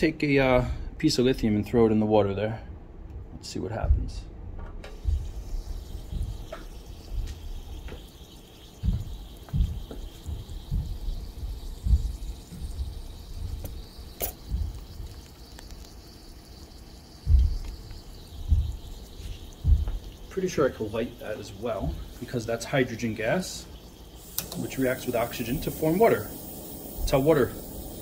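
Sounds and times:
low thumps: 3.8s - 15.3s, 17.2s - 28.0s
metal fizzing on water: 4.9s - 28.0s.

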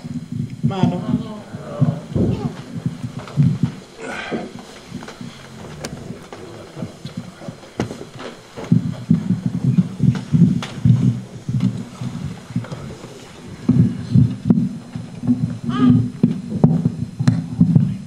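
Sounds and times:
muffled voice speaking: 5.2s - 7.9s.

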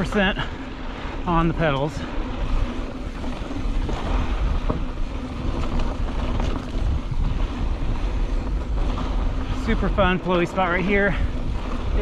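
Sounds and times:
wind buffeting microphone: 0.0s - 12.0s
tyres rolling over dirt: 1.2s - 12.0s.

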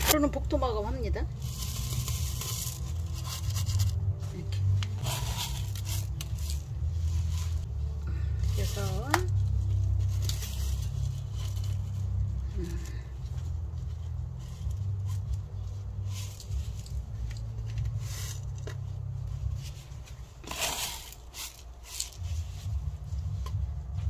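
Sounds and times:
steady low rumble: 0.0s - 24.0s
soil scraping and crackling: 1.0s - 22.7s.

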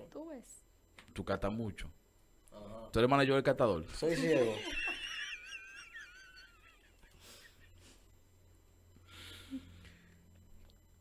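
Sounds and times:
person laughing wheezily: 6.5s - 8.0s.

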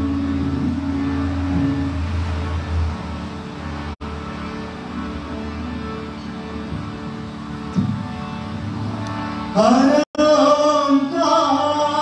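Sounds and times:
harmonium playing sustained chords: 0.0s - 12.0s.

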